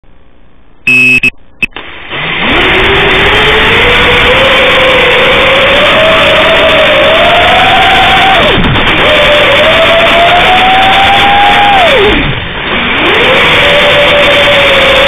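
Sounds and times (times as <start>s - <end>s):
drone motors whining: 0.9s - 1.7s
electronic beep: 0.9s - 1.7s.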